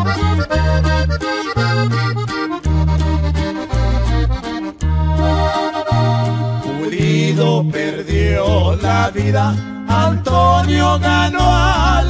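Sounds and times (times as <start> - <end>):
accordion melody: 0.0 - 12.0
steady bass line: 0.0 - 12.0
strummed accompaniment: 0.0 - 12.0.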